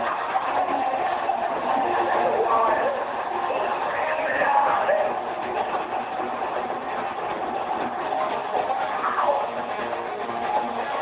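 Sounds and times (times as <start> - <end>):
distorted live metal concert: 0.0 - 11.0.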